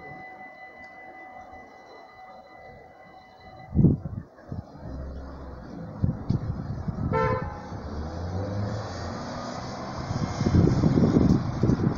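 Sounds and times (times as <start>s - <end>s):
road traffic moving off: 0.0s - 11.9s
car horn toot: 7.1s - 7.8s.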